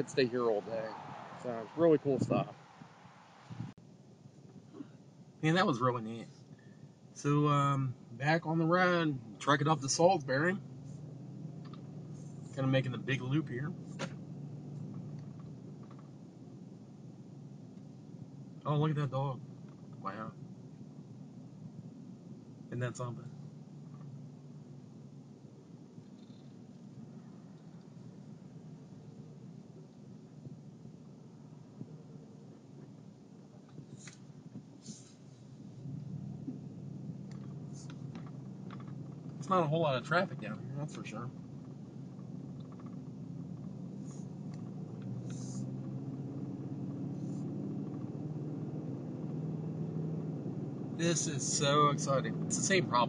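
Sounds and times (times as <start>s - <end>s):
truck engine and tyres hum: 0.0s - 53.0s.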